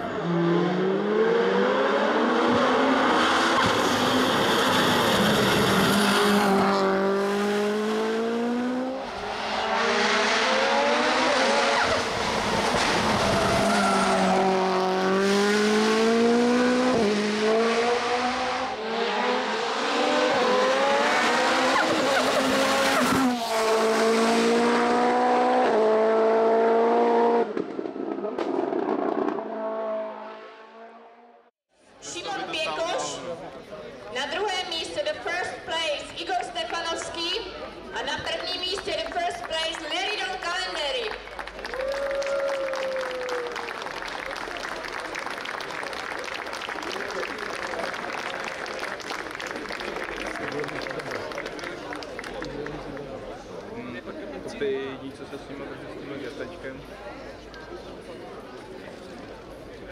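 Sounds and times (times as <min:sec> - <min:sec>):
car engine accelerating hard: 0:00.0 - 0:31.3.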